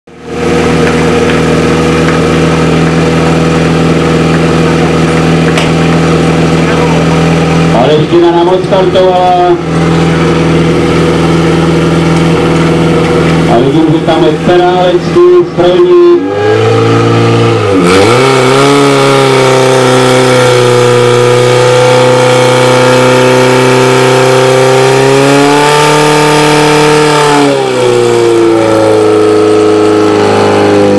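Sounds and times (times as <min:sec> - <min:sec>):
pump engine running at high revs: 0:00.1 - 0:30.9
pump engine idling fast: 0:00.2 - 0:08.0.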